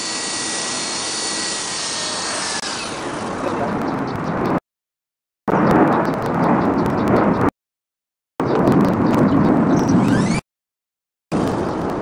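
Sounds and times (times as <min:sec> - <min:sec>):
wind buffeting microphone: 0:03.0 - 0:04.6, 0:05.5 - 0:07.5, 0:08.4 - 0:10.4.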